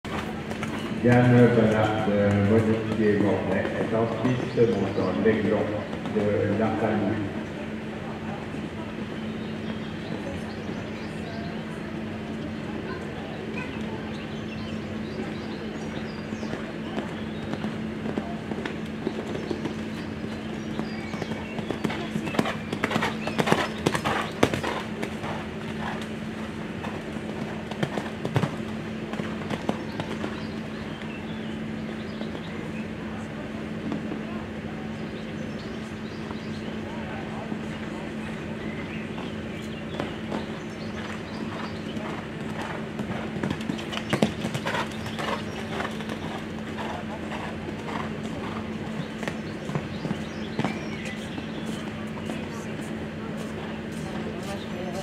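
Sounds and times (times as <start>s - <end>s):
steady low hum: 0.0s - 55.0s
horse hooves cantering on sand: 0.1s - 7.8s, 13.8s - 32.9s, 37.7s - 55.0s.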